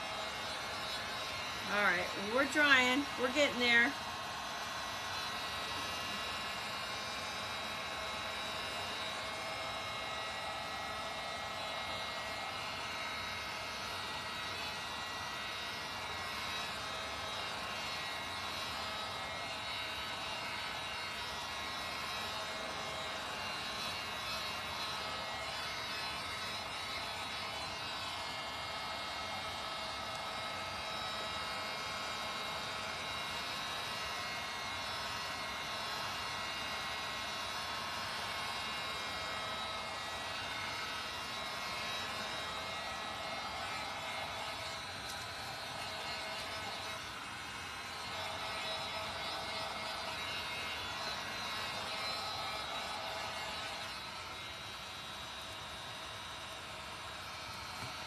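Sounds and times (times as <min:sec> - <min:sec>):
heat gun fan whining: 0:00.0 - 0:58.0.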